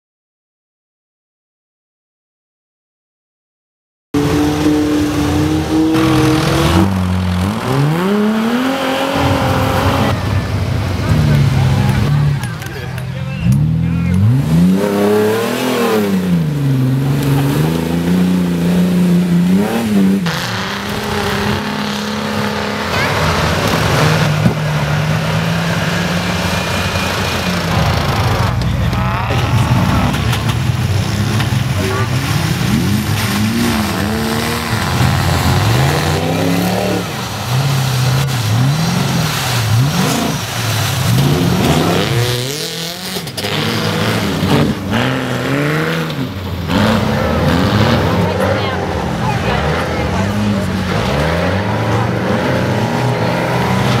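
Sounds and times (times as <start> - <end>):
off-road engines revving: 4.2 - 54.0.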